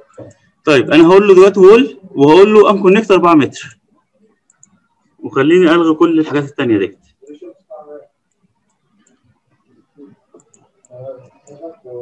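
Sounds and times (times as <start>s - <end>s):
computer mouse clicks: 0.0s - 0.6s, 4.2s - 5.2s, 8.2s - 11.6s.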